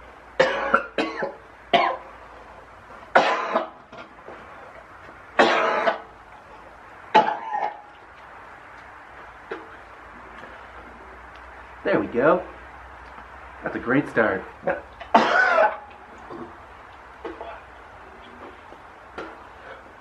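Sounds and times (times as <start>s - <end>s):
man retching and gagging: 0.4s - 2.1s, 3.1s - 3.8s, 5.4s - 6.1s, 7.1s - 7.8s, 14.6s - 17.7s.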